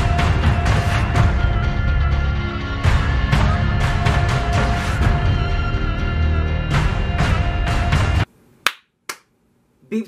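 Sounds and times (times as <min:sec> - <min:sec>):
music: 0:00.0 - 0:08.3
hand claps: 0:08.6 - 0:09.3.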